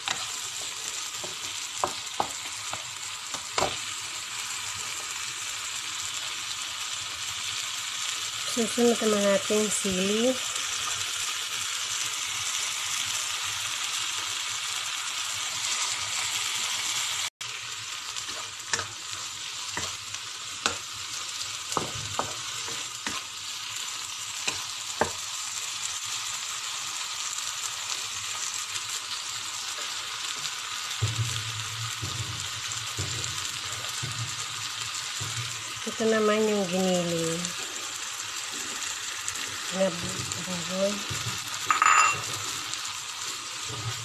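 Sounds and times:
vegetables sizzling in hot oil: 0:00.0 - 0:44.0.

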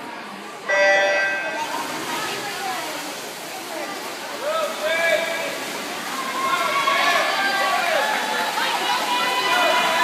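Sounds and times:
spectators' voices: 0:00.0 - 0:10.0
splashing of swimmers diving: 0:00.9 - 0:10.0.

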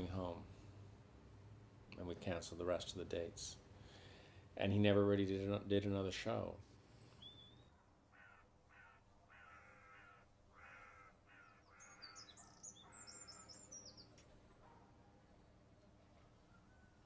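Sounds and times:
small bird chirping: 0:07.2 - 0:07.8, 0:11.3 - 0:14.2
faint crows cawing: 0:07.4 - 0:14.1.

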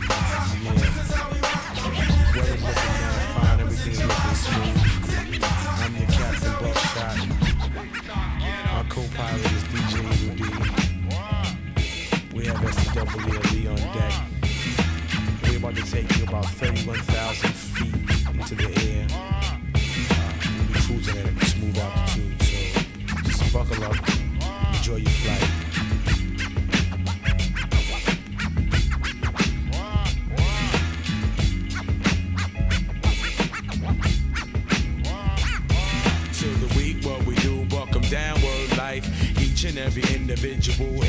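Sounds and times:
record scratching: 0:00.0 - 0:19.2, 0:19.9 - 0:41.0
hip hop beat: 0:00.0 - 0:41.0.

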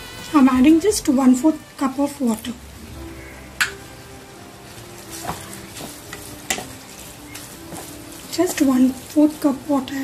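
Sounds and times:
curry sizzling in a wok: 0:00.0 - 0:10.0.

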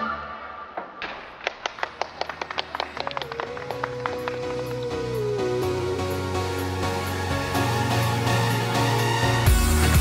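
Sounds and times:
audience clapping: 0:01.0 - 0:05.3.

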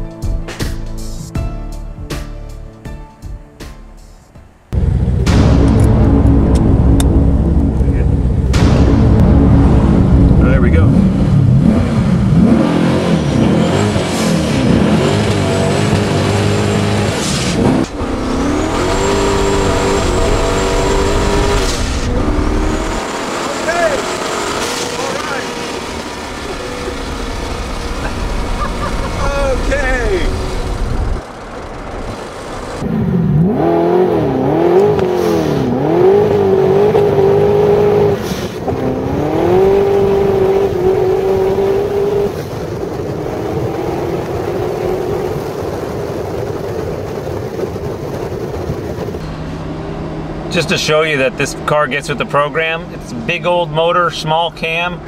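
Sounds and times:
engine revving through gears: 0:04.8 - 0:46.5.

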